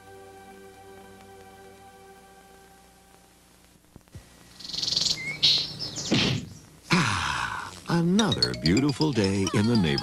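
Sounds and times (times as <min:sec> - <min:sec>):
cartoon birds chirping: 0:04.6 - 0:06.7.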